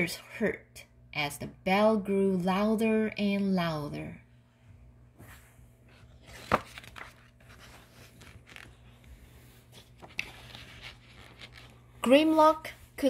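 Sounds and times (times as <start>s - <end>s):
pages rustling: 5.2s - 12.0s
paper page snapping: 6.3s - 8.7s.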